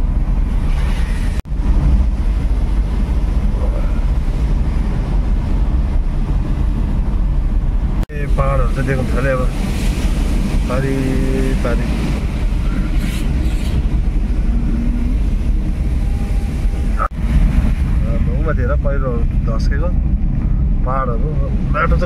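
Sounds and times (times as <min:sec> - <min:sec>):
car driving on wet road: 0:00.0 - 0:22.0.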